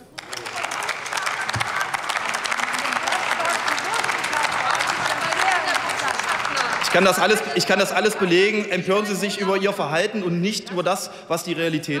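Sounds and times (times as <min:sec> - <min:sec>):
many hands clapping: 0:00.0 - 0:08.2.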